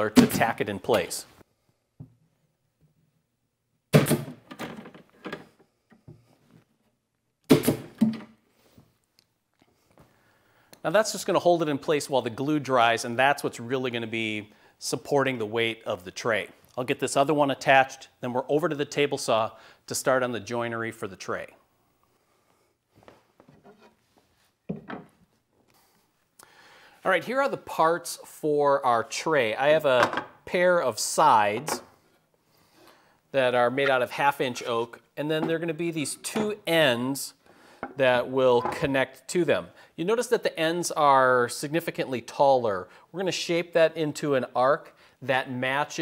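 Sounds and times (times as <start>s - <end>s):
pin nailer firing: 7.5s - 8.1s
wooden knocks and rubs: 23.1s - 25.3s.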